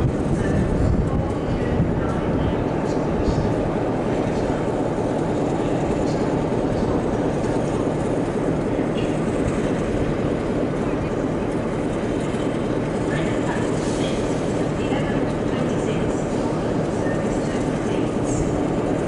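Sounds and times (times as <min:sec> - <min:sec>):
train engine and rail noise: 0:00.0 - 0:19.0.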